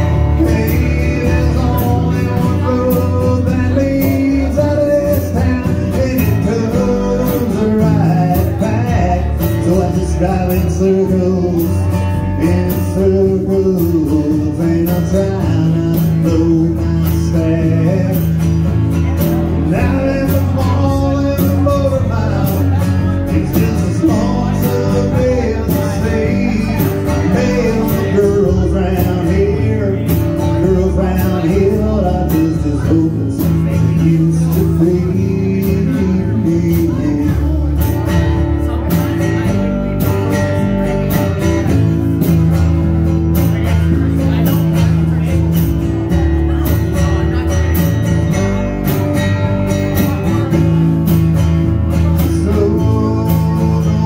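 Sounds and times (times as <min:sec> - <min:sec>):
person singing: 0:00.0 - 0:42.4, 0:43.4 - 0:54.0
acoustic guitar: 0:00.0 - 0:54.0
drum kit: 0:00.0 - 0:54.0
upright bass: 0:00.0 - 0:54.0.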